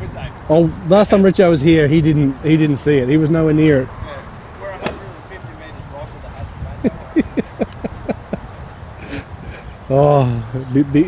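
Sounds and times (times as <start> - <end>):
golf club striking ball: 4.7 - 5.3.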